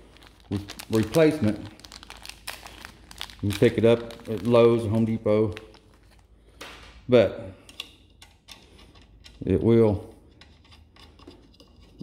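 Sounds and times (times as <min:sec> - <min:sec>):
fingers scratching turning nut: 0:10.2 - 0:12.0.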